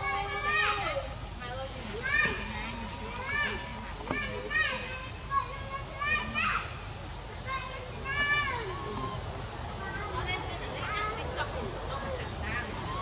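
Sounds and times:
baby monkey crying: 0:01.8 - 0:05.3, 0:08.0 - 0:13.0.

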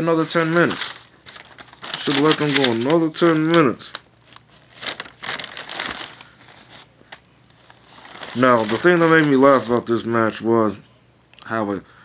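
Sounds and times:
crinkling and rustling: 0:00.0 - 0:10.0.

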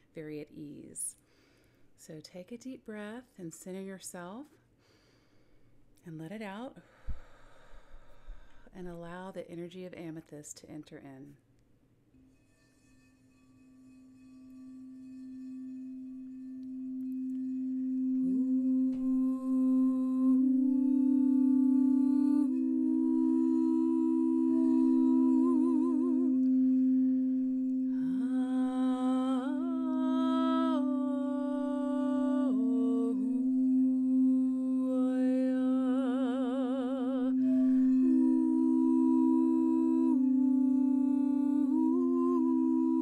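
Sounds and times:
singing bowl ringing: 0:12.3 - 0:43.0
woman toning wordless notes: 0:15.5 - 0:43.0.

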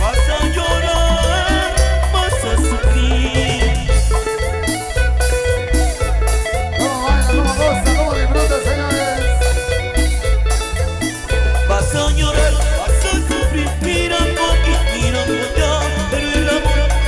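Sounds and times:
live band playing latin dance music: 0:00.0 - 0:17.0.

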